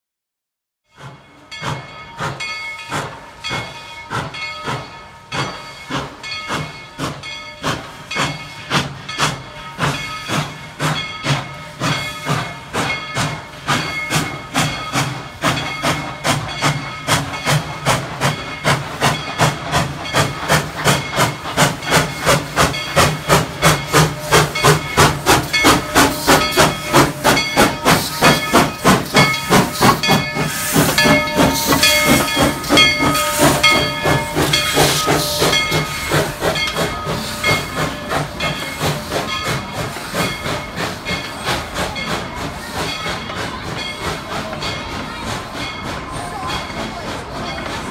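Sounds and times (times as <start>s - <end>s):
steam locomotive chuffing: 0.9s - 47.9s
steam hissing: 1.0s - 47.9s.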